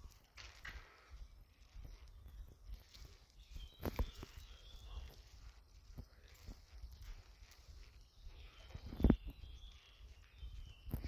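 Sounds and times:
footsteps on brick floor: 0.0 - 11.0.

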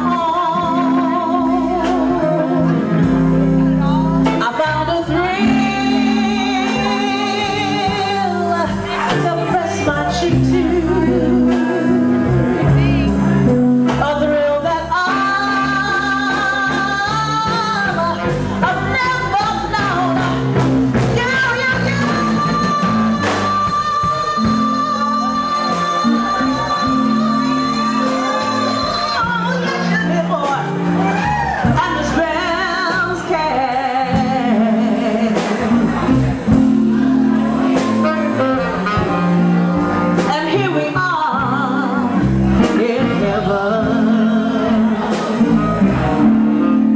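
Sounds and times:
live band: 0.0 - 46.9
steady bass line: 0.0 - 46.9
woman singing blues: 0.0 - 46.9.

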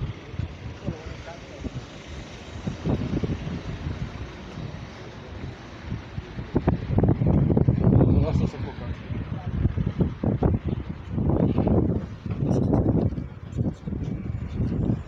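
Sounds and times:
voices: 0.0 - 3.2, 7.8 - 12.7
traffic: 0.0 - 15.0
wind buffeting microphone: 0.0 - 15.0.

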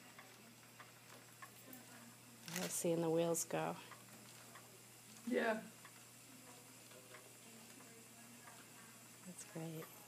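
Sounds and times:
spinning wheels ticking: 2.8 - 10.0.

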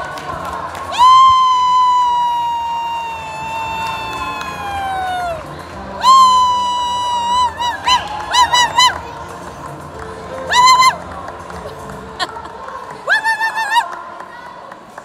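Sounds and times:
crowd cheering: 0.0 - 9.6, 12.2 - 15.0
spectator whooping: 0.9 - 5.4, 6.0 - 9.1, 10.5 - 11.0, 13.1 - 13.9.

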